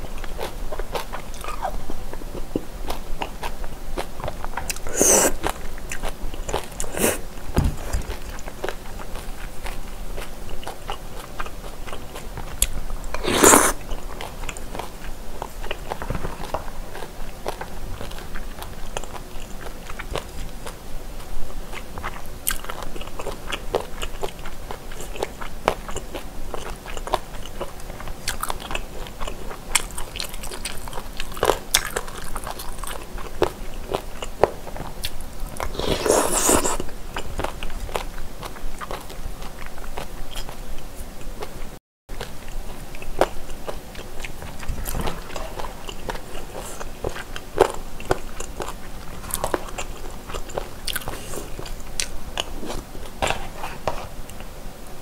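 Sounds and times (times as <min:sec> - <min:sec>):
person chewing food: 0:00.0 - 0:54.5
crunching: 0:04.4 - 0:10.3.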